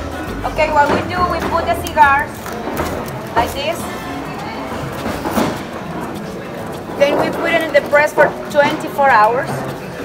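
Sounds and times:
background music: 0.0 - 10.0
busy workroom noise: 0.0 - 10.0.

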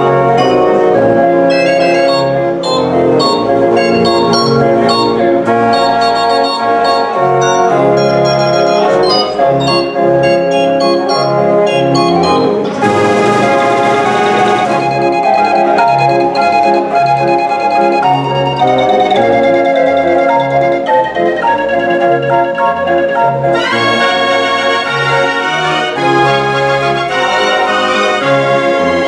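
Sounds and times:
street organ playing tune: 0.0 - 29.0
organ percussion burst: 3.2 - 17.4.

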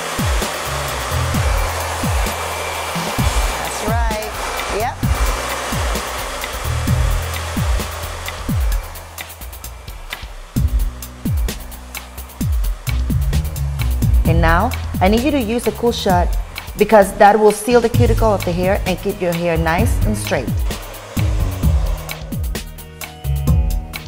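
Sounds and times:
music with bass beat: 0.0 - 17.1, 18.0 - 24.0
hair dryer blowing: 0.0 - 23.4.

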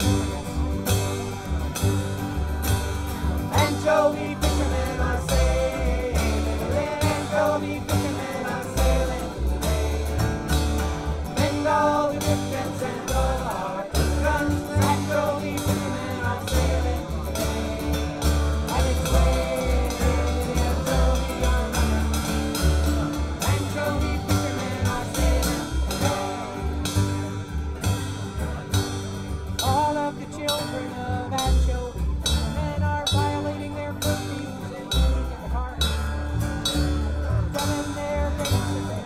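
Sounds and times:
acoustic guitars strumming: 0.0 - 39.0
plucked double bass: 0.0 - 39.0.

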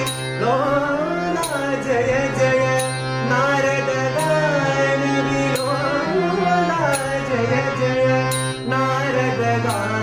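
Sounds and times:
harmonium chords: 0.0 - 10.0
man singing: 0.0 - 10.0.

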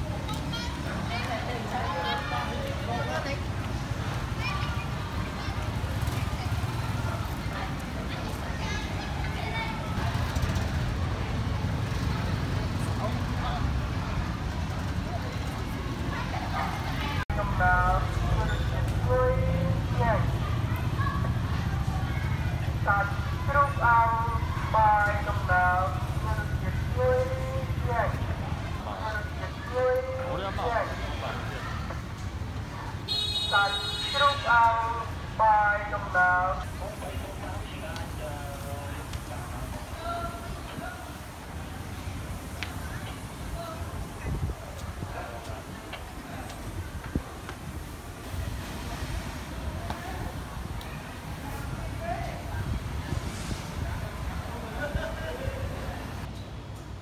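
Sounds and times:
faint voices: 0.0 - 56.3
traffic rumble: 0.0 - 57.0
people talking: 15.0 - 47.6, 48.8 - 56.3.

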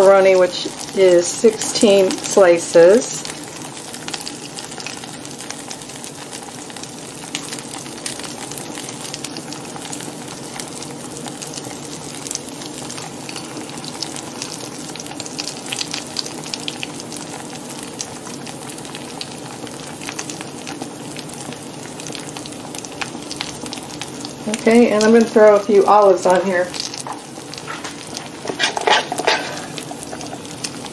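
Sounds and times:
food sizzling in frying pan: 0.0 - 30.9.

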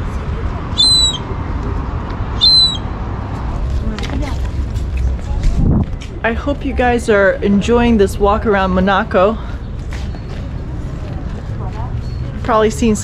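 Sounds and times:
faint voices: 0.0 - 13.0
bird calling: 0.7 - 1.4, 2.4 - 3.0.

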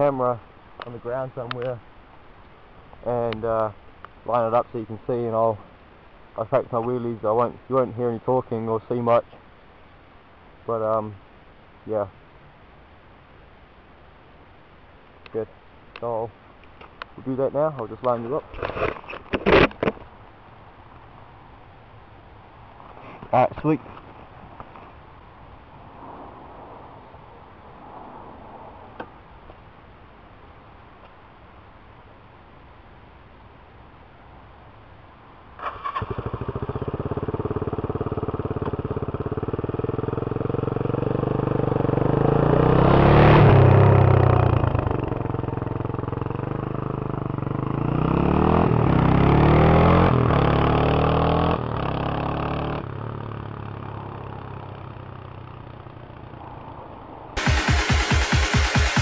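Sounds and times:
motorcycle engine revving: 35.6 - 56.7
electronic music: 57.4 - 59.0.

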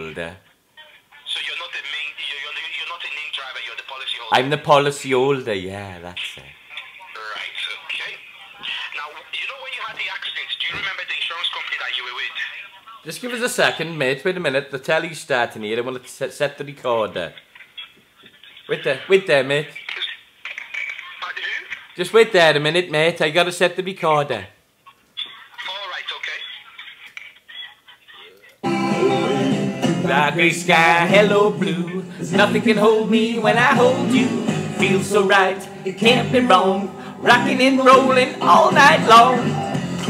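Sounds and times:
voice over telephone line: 0.0 - 4.8, 6.1 - 13.9.

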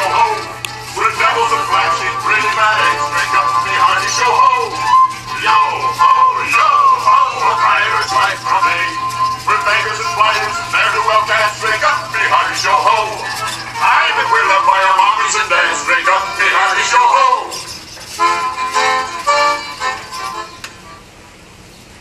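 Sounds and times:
voices singing with instruments: 0.0 - 17.8
steady low hum: 0.0 - 21.8.

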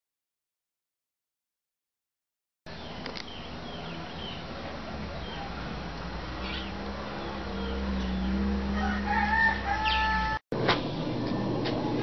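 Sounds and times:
pitched bird call: 6.4 - 10.4.

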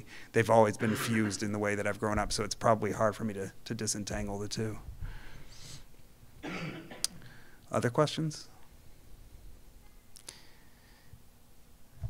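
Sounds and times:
person coughing: 0.8 - 1.5, 6.4 - 7.2
faint breath: 5.0 - 5.9, 10.2 - 11.2.

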